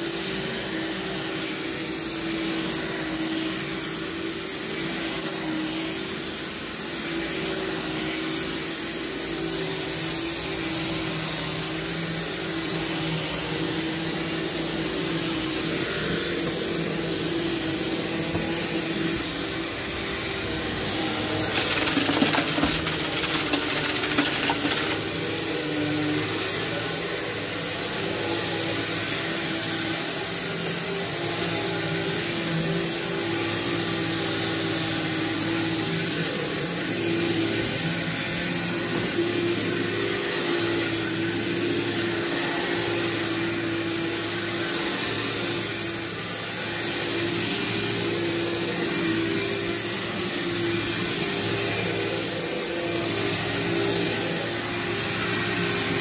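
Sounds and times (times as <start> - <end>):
vacuum cleaner running: 0.0 - 56.0.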